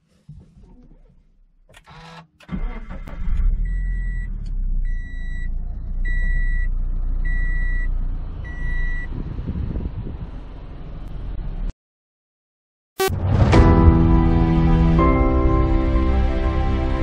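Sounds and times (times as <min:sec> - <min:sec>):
car engine starting and idling: 0:00.6 - 0:09.1.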